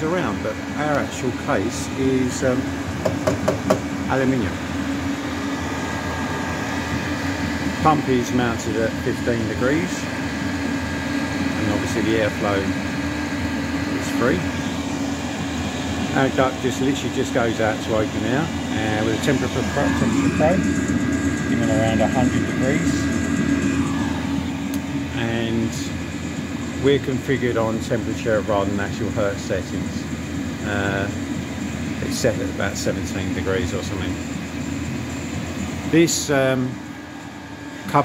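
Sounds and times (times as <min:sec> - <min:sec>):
air heater fan whirring: 0:00.0 - 0:38.0.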